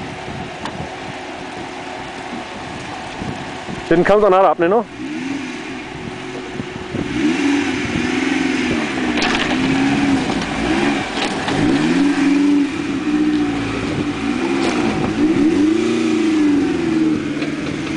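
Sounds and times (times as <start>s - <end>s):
truck engine revving: 1.5s - 17.9s.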